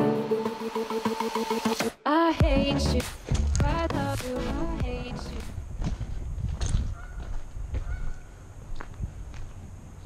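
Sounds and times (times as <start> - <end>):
wind rumble: 5.4 - 10.0.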